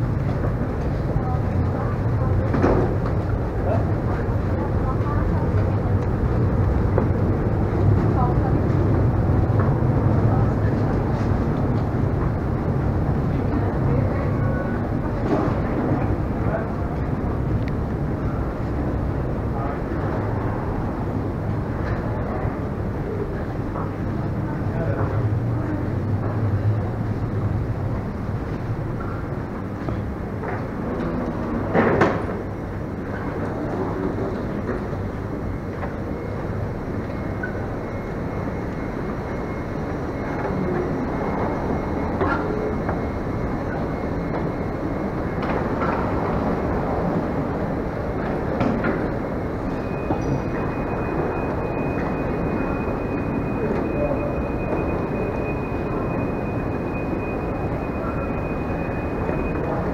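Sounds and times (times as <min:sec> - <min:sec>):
faint voices of people: 0:00.0 - 0:59.9
low rumbling hum: 0:00.0 - 0:59.9.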